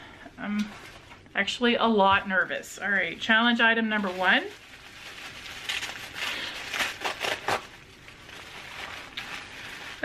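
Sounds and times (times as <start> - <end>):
wrapping crinkling and rustling: 0.6 - 10.0.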